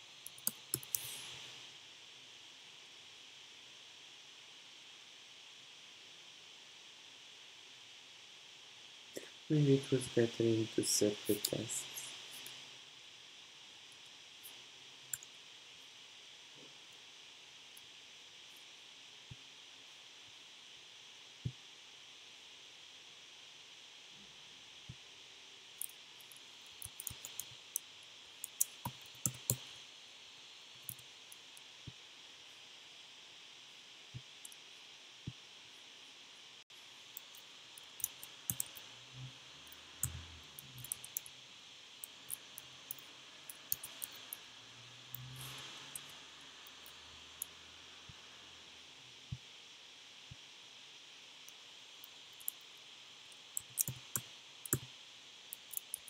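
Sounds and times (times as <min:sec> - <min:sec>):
faint hiss: 0:00.0 - 0:56.0
mouse clicks: 0:00.2 - 0:01.4, 0:53.6 - 0:54.9
computer keystrokes: 0:00.3 - 0:01.2, 0:26.8 - 0:27.5, 0:28.4 - 0:29.7, 0:38.0 - 0:38.8, 0:53.6 - 0:54.9.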